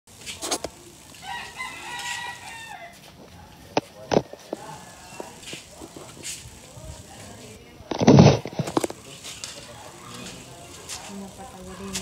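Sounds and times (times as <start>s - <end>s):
rooster crowing: 1.2s - 3.1s.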